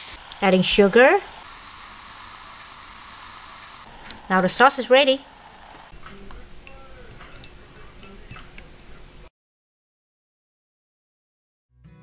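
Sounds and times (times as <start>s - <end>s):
sauce bubbling in saucepan: 0.0s - 6.0s.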